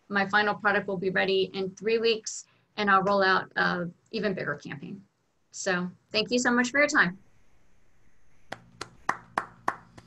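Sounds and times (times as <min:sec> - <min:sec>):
person clapping: 0:08.5 - 0:10.0.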